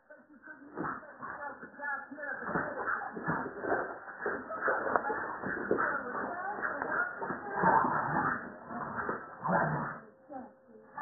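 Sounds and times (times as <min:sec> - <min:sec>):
dogs scuffling: 0:02.5 - 0:08.4.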